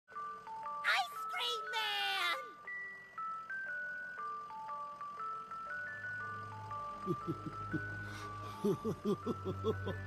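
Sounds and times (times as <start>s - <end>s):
ice cream truck jingle: 0.1s - 10.0s.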